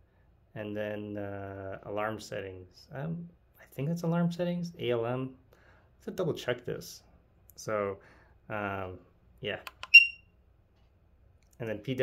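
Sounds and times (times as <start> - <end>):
short high-pitched beep: 9.8 - 10.2.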